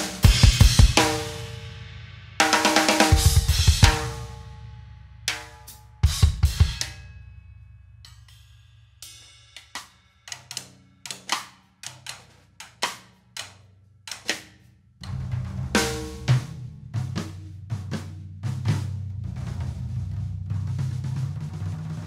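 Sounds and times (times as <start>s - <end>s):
drum kit solo: 0.0s - 7.3s, 8.0s - 22.0s.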